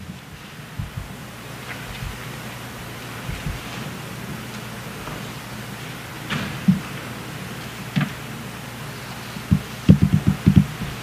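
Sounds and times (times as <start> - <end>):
sound system hiss: 0.0 - 11.0
soft low thumps on microphone: 0.1 - 1.2, 1.8 - 2.2, 3.2 - 3.8, 9.5 - 11.0.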